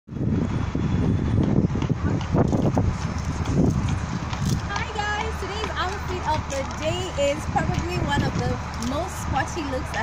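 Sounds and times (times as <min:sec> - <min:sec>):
wind buffeting microphone: 0:00.1 - 0:10.0
footsteps on gravel: 0:02.2 - 0:10.0.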